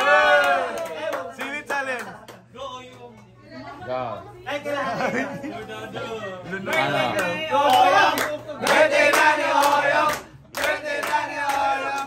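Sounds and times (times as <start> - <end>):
people calling out in a room: 0.0 - 1.7, 4.3 - 12.0.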